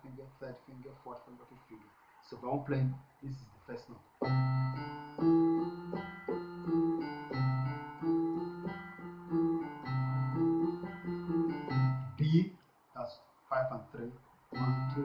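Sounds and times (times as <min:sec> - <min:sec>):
piano keyboard played slowly: 0:04.2 - 0:12.4, 0:14.5 - 0:15.0.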